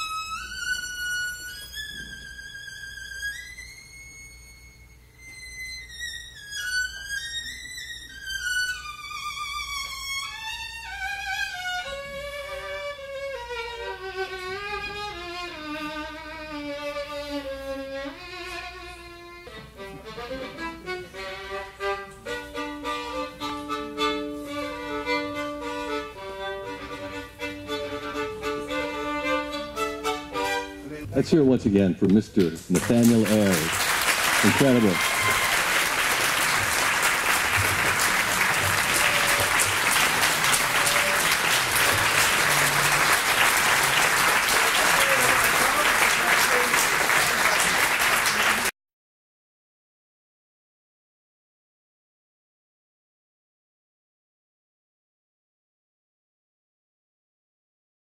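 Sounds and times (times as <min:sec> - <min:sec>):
solo violin: 0:00.0 - 0:31.2, 0:34.4 - 0:45.3.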